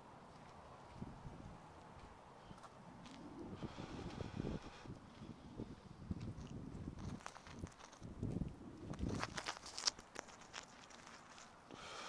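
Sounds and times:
footsteps on grass: 0.3s - 5.4s
clicks and rustling: 8.9s - 11.6s.

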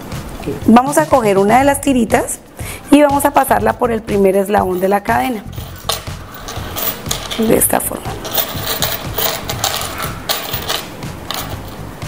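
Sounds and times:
metal chain clinking: 4.5s - 12.0s.

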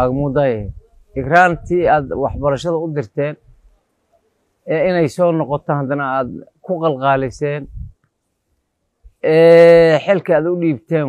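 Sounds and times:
man speaking: 0.0s - 3.4s, 4.6s - 7.8s, 9.2s - 11.0s.

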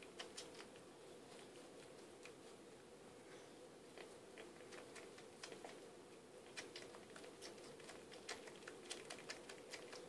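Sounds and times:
small wet clicks: 0.0s - 2.4s, 3.9s - 5.8s, 6.5s - 10.0s.

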